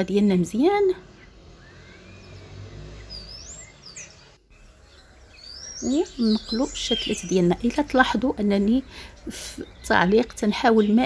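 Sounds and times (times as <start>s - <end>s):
low outdoor background noise: 0.0s - 11.0s
faint bird chirps: 1.0s - 11.0s.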